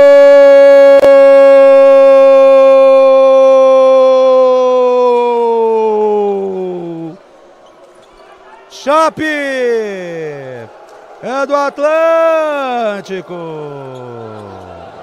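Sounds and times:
commentator's drawn-out goal cry: 8.7 - 14.3.

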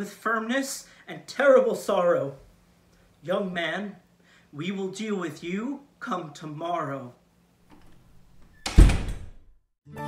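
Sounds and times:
door slamming shut: 7.7 - 9.5.

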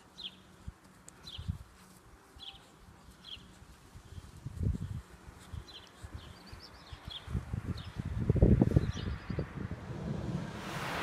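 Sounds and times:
faint bird chirps: 2.3 - 7.3
wind buffeting microphone: 3.9 - 11.0.

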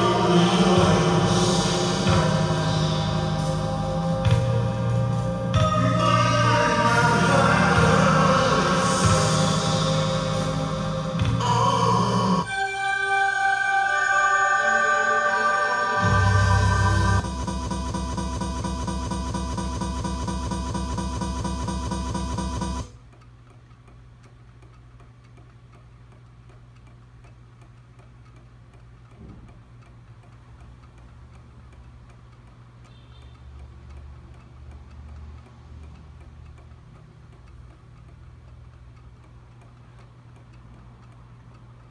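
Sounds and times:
steady low hum: 0.0 - 12.5, 15.9 - 32.8
desk toys ticking softly: 21.7 - 41.9.

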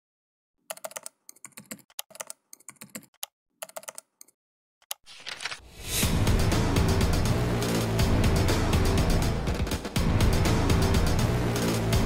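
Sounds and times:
keyboard keystroke clicks: 0.7 - 5.5.

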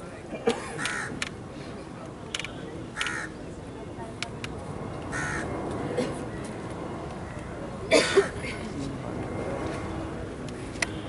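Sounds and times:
crow cawing: 0.8 - 1.1, 3.0 - 3.3, 5.1 - 5.5.

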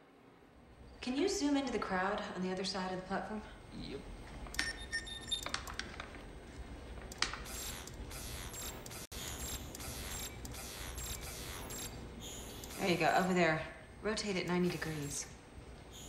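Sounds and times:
mechanical ratcheting: 7.1 - 12.0.

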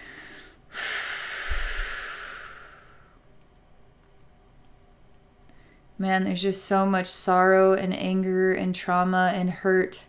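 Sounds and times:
woman breathing out: 0.0 - 3.2.

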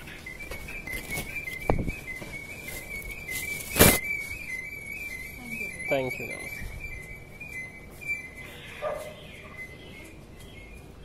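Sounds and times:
faint high chirps: 0.0 - 11.0
dog barking: 8.8 - 9.2.

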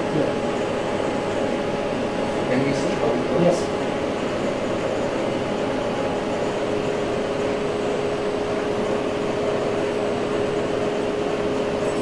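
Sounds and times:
machine hum with whine: 0.0 - 12.0.

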